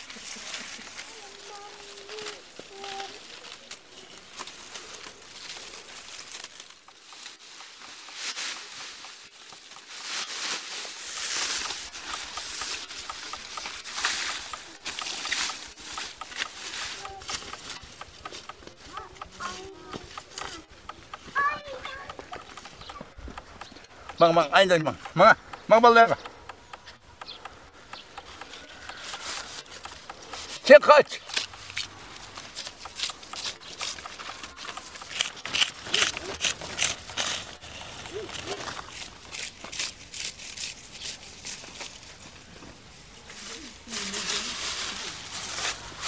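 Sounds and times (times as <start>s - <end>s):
dry reeds rustling and crackling: 0.0s - 26.2s, 26.9s - 46.0s.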